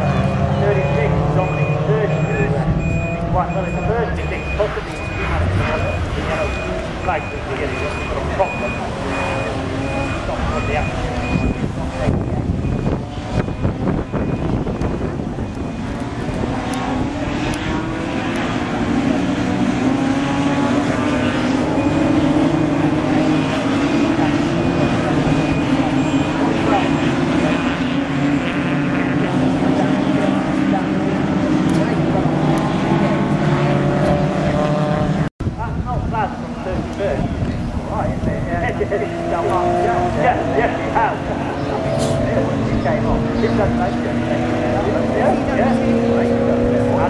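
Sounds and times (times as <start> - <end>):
race car engines revving: 0.0 - 47.0.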